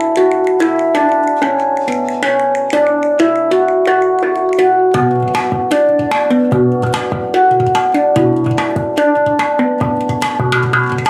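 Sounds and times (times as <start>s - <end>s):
handpan notes played with fingers: 0.0s - 11.0s.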